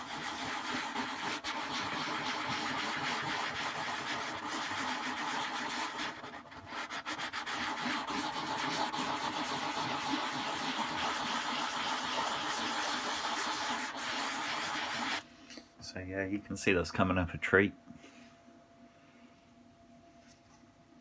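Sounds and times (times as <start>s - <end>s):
cloth scrubbing speaker cone: 0.0s - 15.2s.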